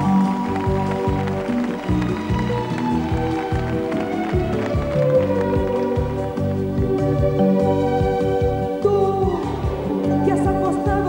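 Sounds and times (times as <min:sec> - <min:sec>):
bass and drums beat: 0:00.0 - 0:11.0
held keyboard chords: 0:00.0 - 0:11.0.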